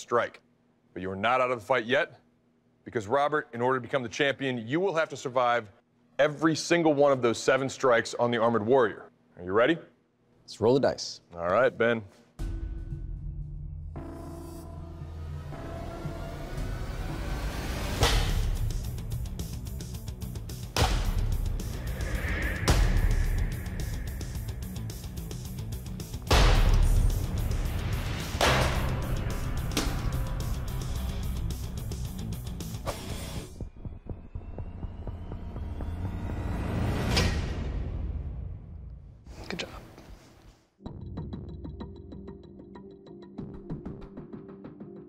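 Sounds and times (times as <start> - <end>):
dramatic background music: 12.4 - 39.0
rising whoosh: 21.1 - 25.3.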